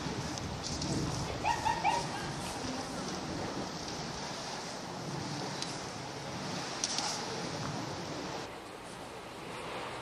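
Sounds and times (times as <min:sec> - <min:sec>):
seaside wind: 0:00.0 - 0:10.0
surf: 0:00.0 - 0:10.0
animal yelping: 0:01.4 - 0:02.3.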